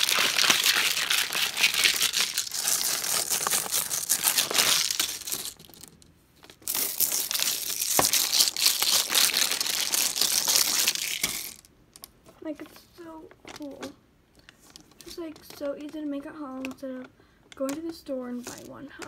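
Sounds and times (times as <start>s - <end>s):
beads and water rattling: 0.0s - 12.1s
plastic bottle crinkling: 0.0s - 12.1s.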